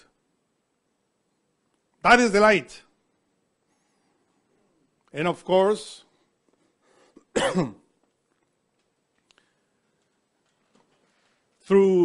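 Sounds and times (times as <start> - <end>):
man clearing throat: 7.2 - 7.9.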